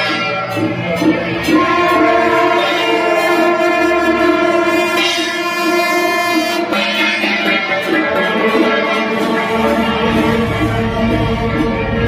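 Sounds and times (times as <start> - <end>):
music of long held chords: 0.0 - 12.0.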